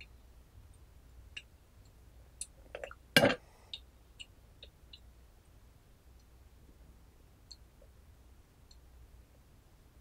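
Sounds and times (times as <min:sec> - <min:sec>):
drops ticking from spout: 0:03.7 - 0:05.1.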